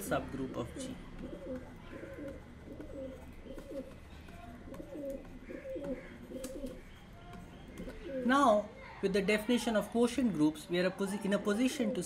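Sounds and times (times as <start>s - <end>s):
dove cooing: 0.0s - 7.0s, 7.6s - 8.5s.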